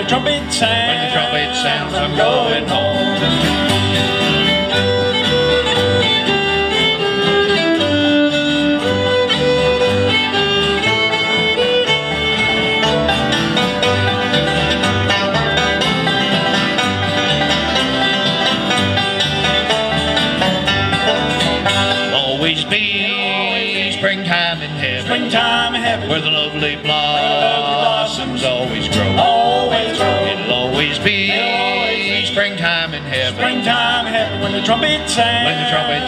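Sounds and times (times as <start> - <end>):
fiddle melody: 0.0 - 36.0
plucked upright bass: 0.0 - 36.0
strummed acoustic guitars: 0.0 - 36.0.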